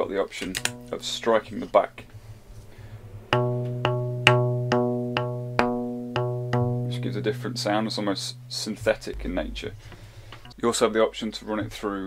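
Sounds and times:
faint hum: 0.0s - 5.2s, 6.6s - 11.8s
mallet striking string instrument: 0.4s - 10.6s.

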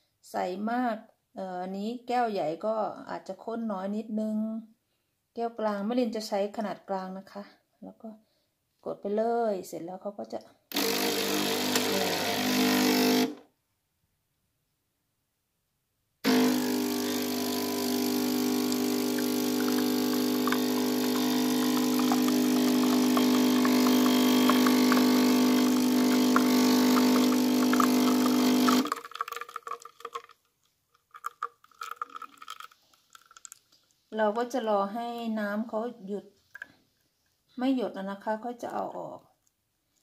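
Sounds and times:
espresso machine pump humming: 10.7s - 13.4s, 16.3s - 29.2s
coffee streaming into mug: 11.1s - 13.0s, 16.3s - 30.4s, 31.0s - 33.9s
faint dripping: 28.9s - 34.1s.

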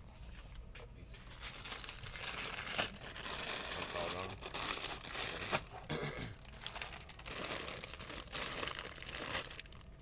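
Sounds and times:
plastic bags crinkling: 1.3s - 10.0s.

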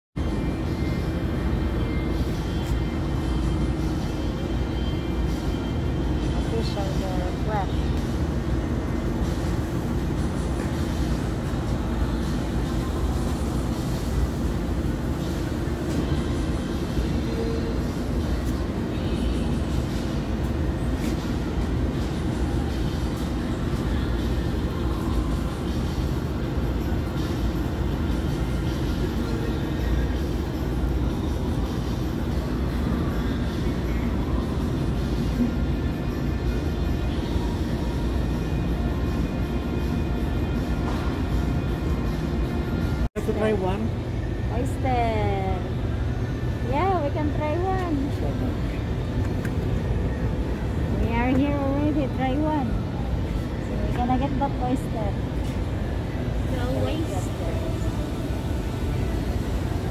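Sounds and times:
low rumbling store noise: 0.2s - 59.9s
faint indistinct voices: 43.2s - 59.9s.

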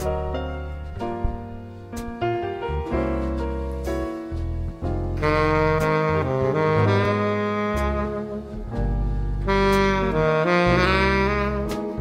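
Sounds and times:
low sustained bass notes: 0.0s - 12.0s
tenor saxophone jazz melody: 3.2s - 12.0s.

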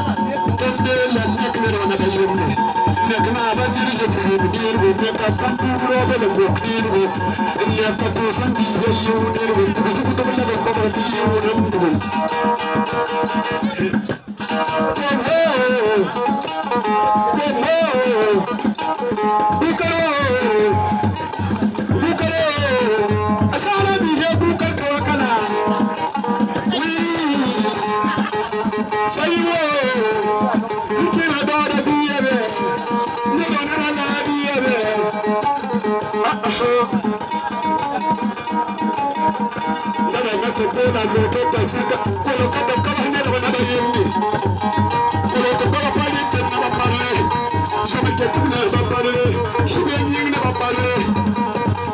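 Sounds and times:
man singing into microphone: 0.0s - 12.4s, 13.5s - 21.3s, 40.0s - 51.9s
plucked string instruments: 0.0s - 51.9s.

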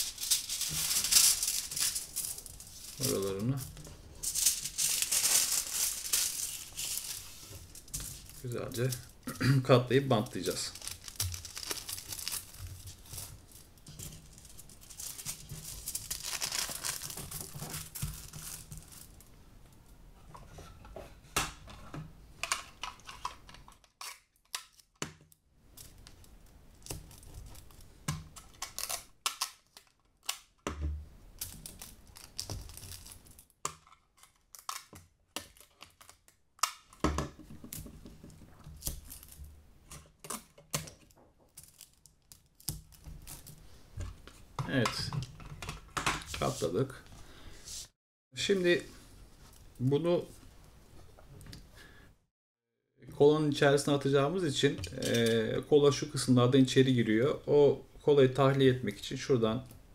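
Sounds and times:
aluminium foil crinkling: 0.0s - 19.3s, 25.8s - 30.5s, 31.4s - 36.3s, 38.6s - 39.5s, 40.2s - 43.6s.

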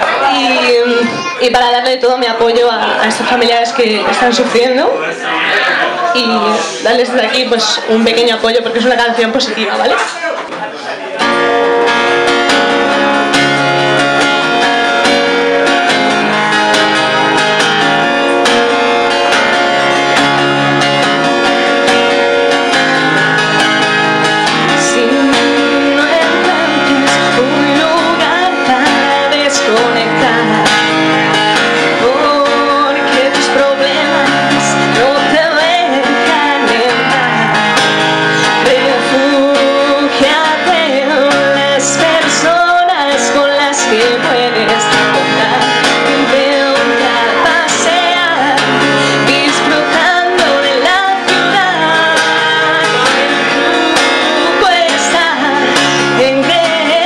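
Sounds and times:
acoustic guitar strumming: 0.0s - 57.0s
woman singing: 0.2s - 5.0s, 6.2s - 10.0s, 14.4s - 20.0s, 20.6s - 57.0s.

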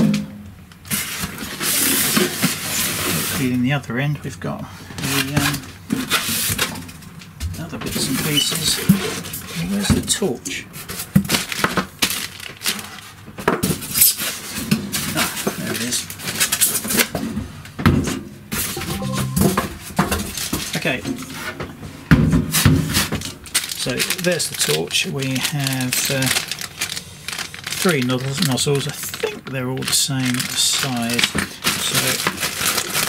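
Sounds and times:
plastic packaging crinkling: 11.3s - 13.1s, 23.4s - 33.0s
polystyrene foam scraping: 23.0s - 29.3s, 30.2s - 33.0s.

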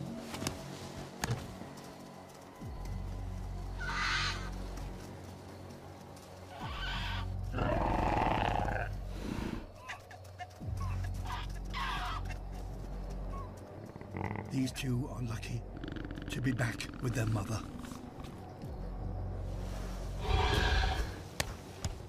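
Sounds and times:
music with low drone: 0.0s - 22.0s
dinosaur calls: 6.6s - 9.0s.

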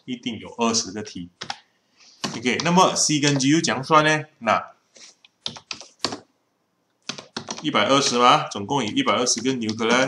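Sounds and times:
keyboard keystrokes: 5.4s - 6.3s, 7.0s - 7.7s.

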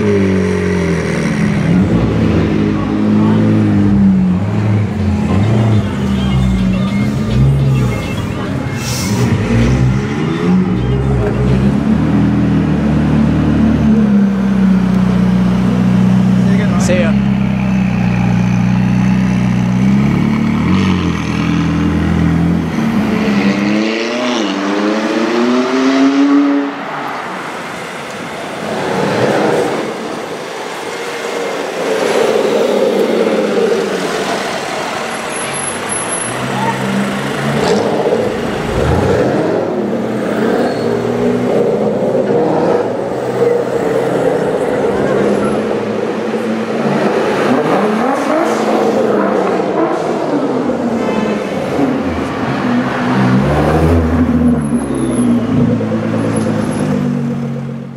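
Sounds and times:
sports cars accelerating: 0.0s - 57.9s
traffic: 0.0s - 57.9s
sports car engine revving: 36.9s - 50.9s.

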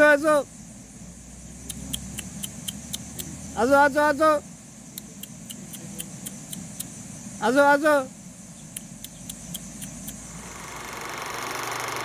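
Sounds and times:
faint outdoor background: 0.0s - 12.0s
film projector whirring and rattling: 10.2s - 12.0s.

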